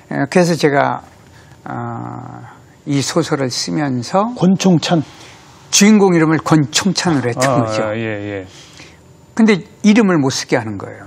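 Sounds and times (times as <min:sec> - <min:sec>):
man's drawn-out hesitation sound: 0:07.1 - 0:08.5.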